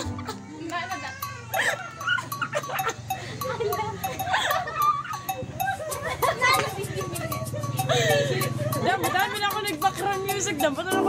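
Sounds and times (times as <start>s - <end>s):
people laughing and shrieking: 0.0s - 11.0s
dance music with steady beat: 5.6s - 11.0s.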